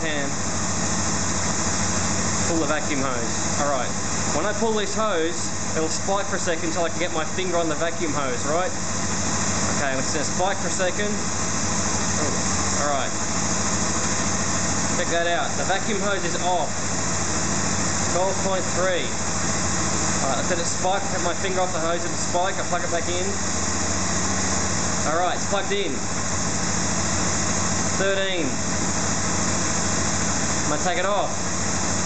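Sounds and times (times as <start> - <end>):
motorcycle engine idling: 0.0 - 32.0.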